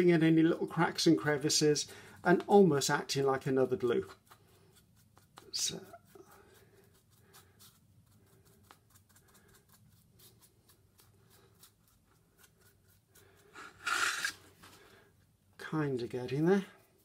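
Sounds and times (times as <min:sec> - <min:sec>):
paintbrush bristles scratching: 0:00.0 - 0:14.8, 0:15.7 - 0:17.0.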